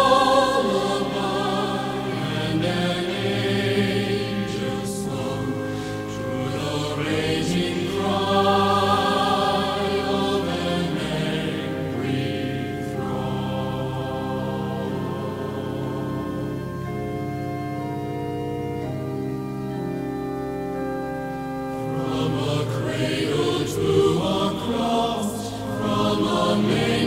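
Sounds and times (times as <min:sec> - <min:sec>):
choir singing sustained chords: 0:00.0 - 0:27.0
organ accompaniment: 0:00.0 - 0:27.0.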